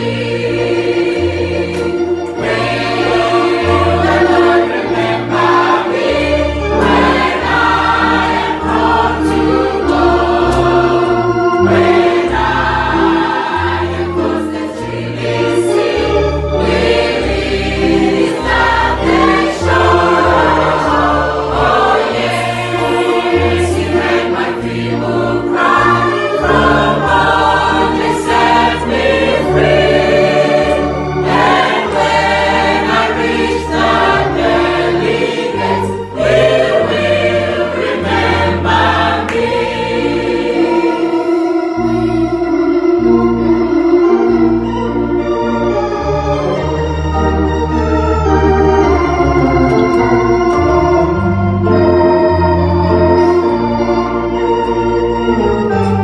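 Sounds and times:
congregation singing a hymn: 0.0 - 56.0
keyboard playing bass and chords: 0.0 - 56.0.

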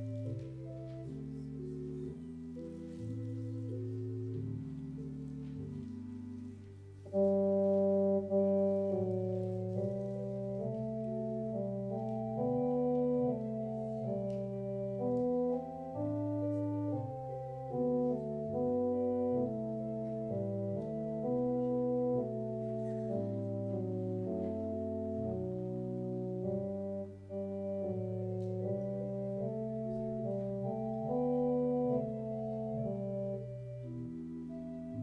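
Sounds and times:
church organ playing chords: 0.0 - 35.0.

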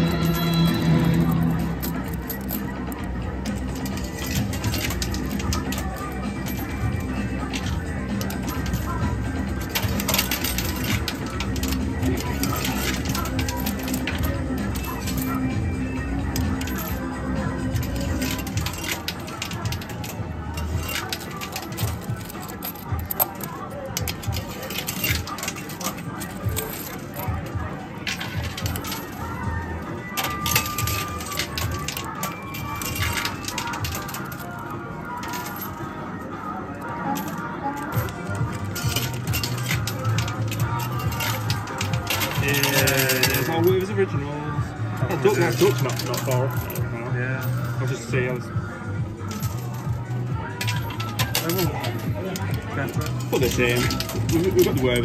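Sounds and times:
arcade music: 0.0 - 55.0
coins clinking and clattering: 0.0 - 55.0.

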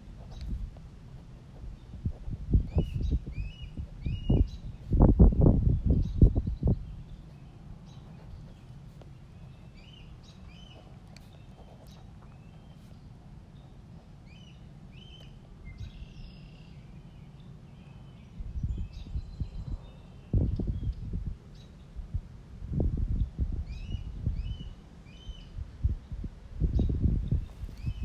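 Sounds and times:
wind buffeting microphone: 0.0 - 12.9, 17.1 - 28.0
bird chirping: 1.6 - 22.0, 23.2 - 28.0.

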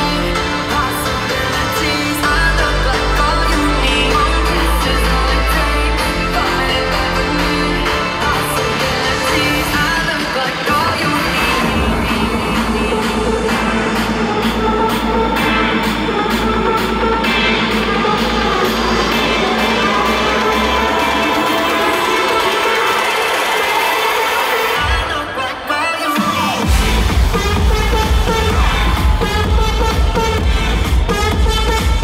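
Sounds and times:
deep bass: 0.0 - 10.1, 11.0 - 22.8, 26.6 - 32.0
live electronic dance music: 0.0 - 32.0.

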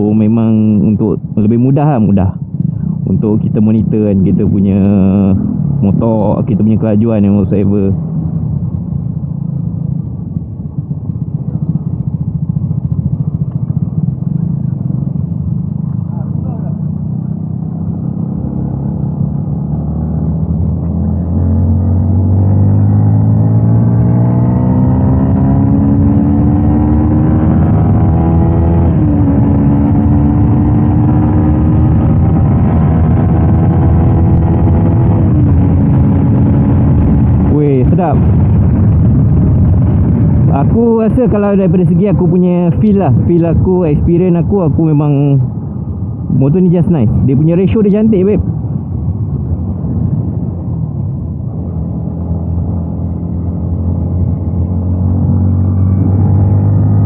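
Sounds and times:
motorcycle engine revving: 2.4 - 57.0.

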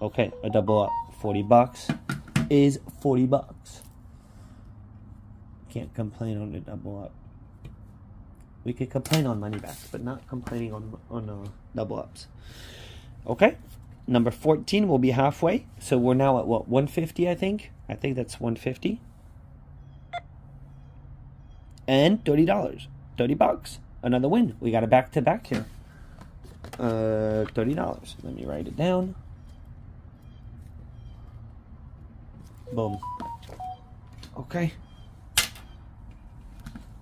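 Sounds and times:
short electronic beep: 0.3 - 1.9, 32.7 - 34.2.

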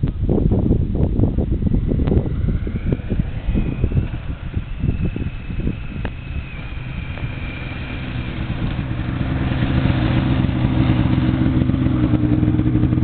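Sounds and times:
snowmobile engine running: 0.6 - 13.0.

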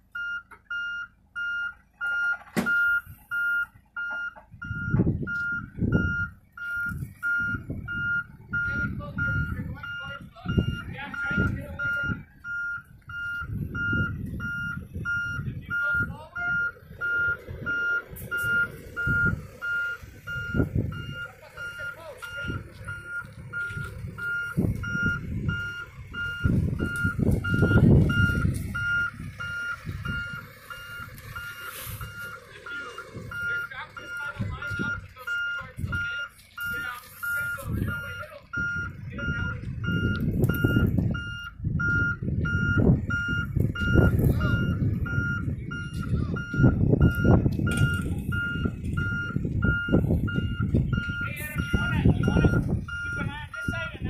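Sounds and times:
diesel engine rumbling: 0.0 - 54.0
reverse alarm beeping: 0.1 - 54.0.

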